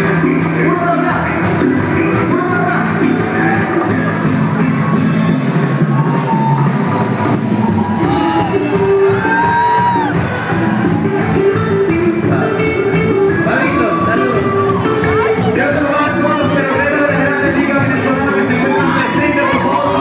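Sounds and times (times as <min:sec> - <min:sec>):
person singing: 0:00.0 - 0:04.8, 0:11.9 - 0:20.0
live pop band playing: 0:00.0 - 0:20.0
audience yelling and whooping: 0:03.2 - 0:12.0, 0:13.2 - 0:20.0.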